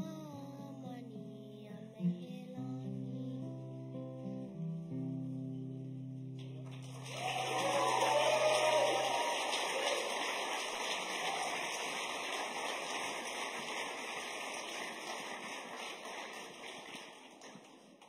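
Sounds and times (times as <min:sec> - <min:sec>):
audience applauding: 0:06.4 - 0:18.0
voices cheering: 0:06.9 - 0:17.6.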